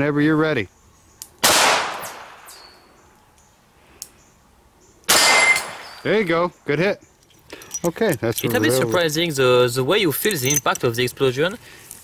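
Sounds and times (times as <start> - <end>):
handgun shot: 1.4 - 2.6, 5.1 - 6.0.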